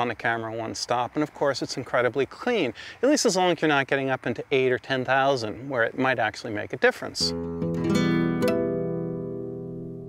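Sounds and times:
guitar chord ringing: 0:07.2 - 0:10.0.

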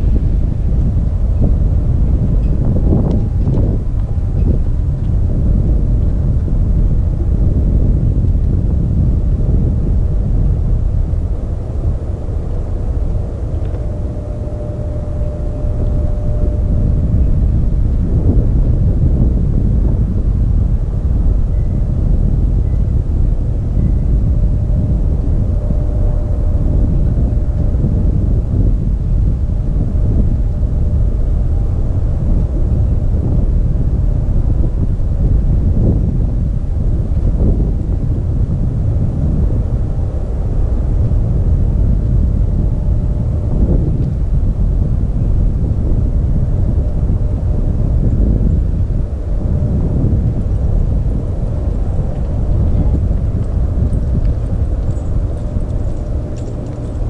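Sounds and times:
jet engine rumble: 0:00.0 - 0:57.0
thin engine whine: 0:00.0 - 0:57.0
wind on microphone: 0:00.0 - 0:57.0.

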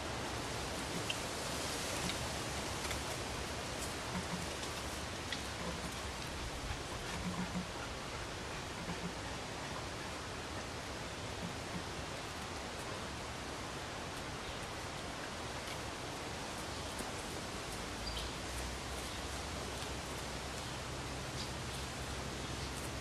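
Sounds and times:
outdoor background hiss: 0:00.0 - 0:23.0.

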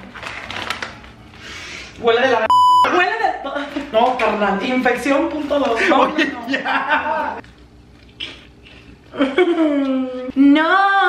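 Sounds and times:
chip bag crinkling: 0:00.0 - 0:01.3.

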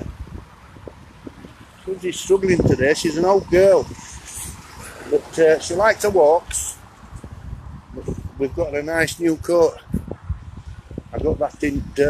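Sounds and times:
faint traffic on wet road: 0:00.0 - 0:12.0
wind on microphone: 0:00.0 - 0:12.0.

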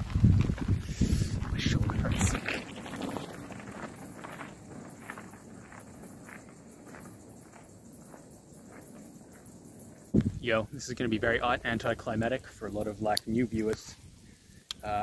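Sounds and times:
bike tyres crunching on gravel: 0:00.0 - 0:14.0.

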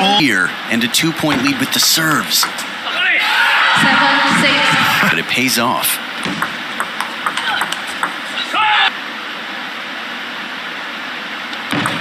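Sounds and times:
table tennis ball clicking: 0:06.2 - 0:08.2.

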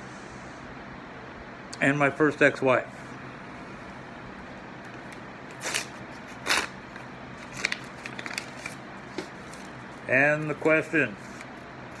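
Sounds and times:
envelope tearing: 0:05.5 - 0:09.8
paper crackling: 0:05.5 - 0:12.0.

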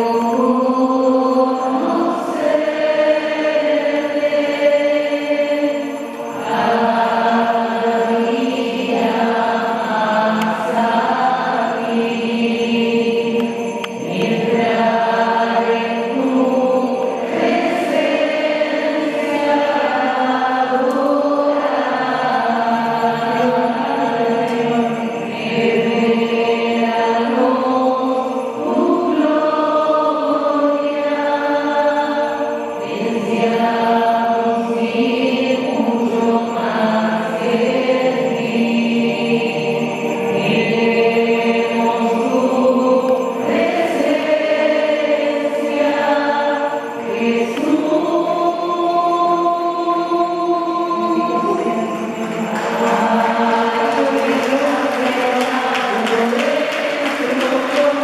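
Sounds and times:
choir singing a hymn: 0:00.0 - 0:58.0.

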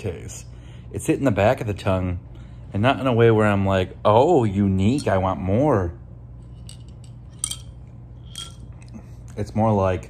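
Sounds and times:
glass marble clinking in bottle: 0:06.4 - 0:08.9.

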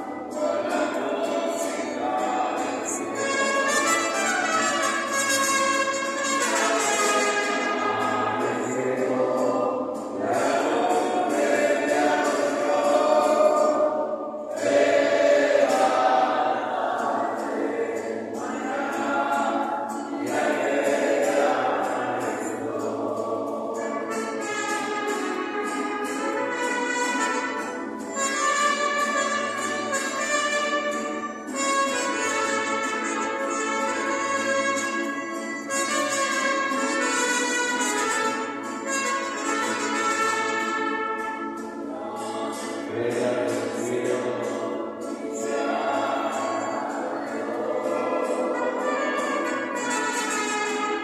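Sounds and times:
group singing devotional song: 0:00.1 - 0:03.4, 0:06.4 - 0:25.1, 0:41.9 - 0:49.7
brass melody: 0:02.9 - 0:08.5, 0:23.2 - 0:41.8, 0:46.3 - 0:51.0.

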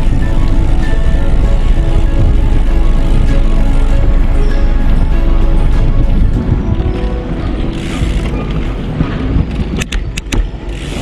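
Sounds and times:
background music: 0:00.0 - 0:11.0
wind and road noise: 0:00.0 - 0:11.0.

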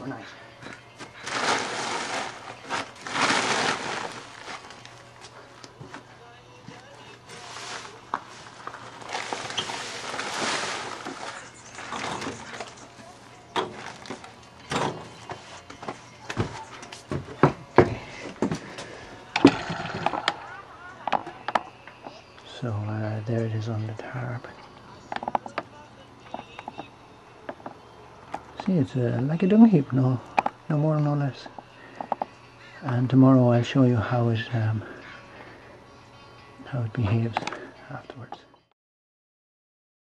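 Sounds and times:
scraping and rustling: 0:01.1 - 0:06.1, 0:07.1 - 0:17.3.

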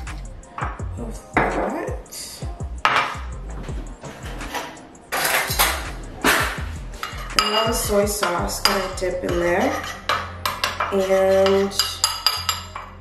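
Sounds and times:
kitchen items clinking and knocking: 0:00.0 - 0:00.7, 0:02.8 - 0:13.0
utensils clattering on countertop: 0:02.8 - 0:03.2, 0:04.0 - 0:13.0.

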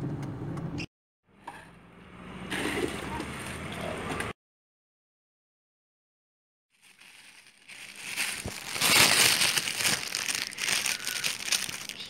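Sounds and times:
plastic bags crinkling: 0:06.8 - 0:12.0.

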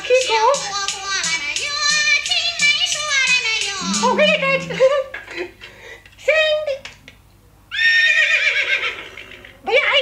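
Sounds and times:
horse neighing: 0:03.8 - 0:04.8.

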